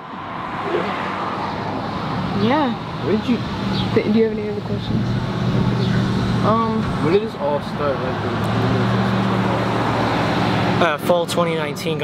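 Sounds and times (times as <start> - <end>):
road noise: 0.0 - 12.0
vehicle engine running: 1.9 - 12.0.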